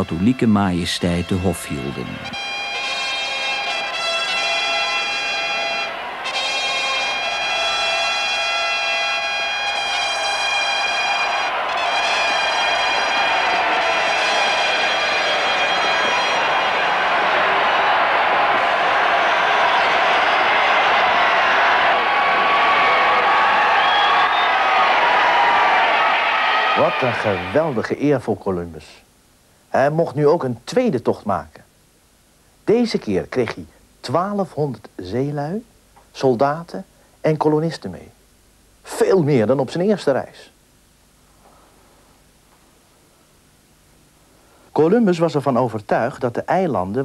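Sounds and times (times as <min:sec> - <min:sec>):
brass fanfare: 0:00.0 - 0:22.2
large crowd cheering: 0:01.3 - 0:28.0.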